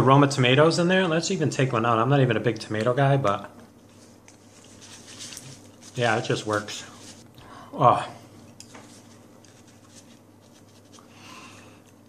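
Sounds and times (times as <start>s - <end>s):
low room hum: 0.0s - 12.0s
paper napkin rustling: 3.8s - 7.3s, 8.7s - 11.1s.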